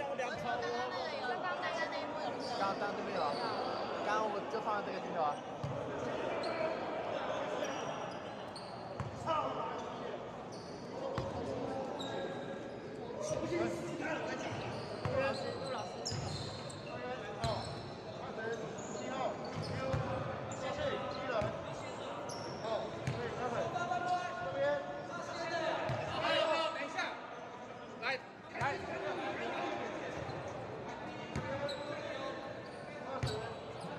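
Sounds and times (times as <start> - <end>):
players' voices and shouts: 0.0 - 33.9.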